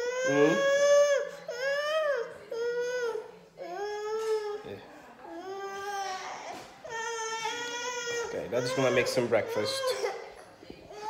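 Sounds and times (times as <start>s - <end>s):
toddler crying: 0.0s - 4.6s, 5.2s - 10.3s.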